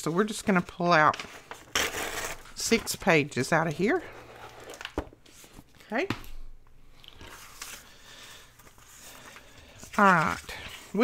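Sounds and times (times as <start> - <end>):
book pages rustling: 6.9 - 11.0.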